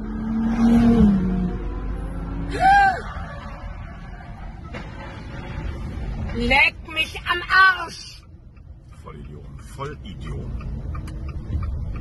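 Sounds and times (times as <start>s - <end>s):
car engine: 0.0s - 12.0s
road noise: 0.0s - 12.0s.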